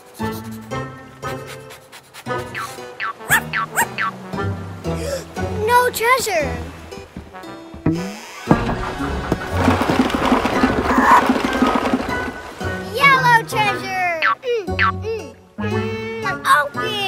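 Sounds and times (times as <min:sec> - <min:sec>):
children's background music: 0:00.0 - 0:17.0
squeaky cartoon vocalizations: 0:02.4 - 0:04.1
springy cartoon boing: 0:02.6 - 0:04.1, 0:07.9 - 0:08.8, 0:14.2 - 0:15.0
wooden barrel rolling: 0:07.8 - 0:13.3.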